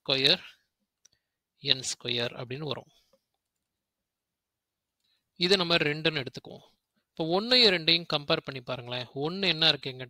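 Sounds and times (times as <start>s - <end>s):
man speaking: 0.0s - 0.7s, 1.6s - 3.1s, 5.4s - 10.0s.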